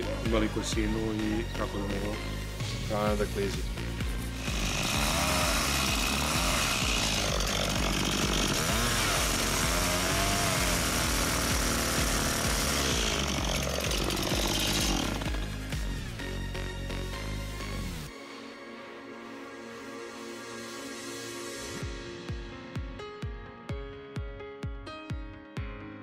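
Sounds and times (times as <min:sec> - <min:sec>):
chainsaw cutting wood: 0:04.2 - 0:16.0.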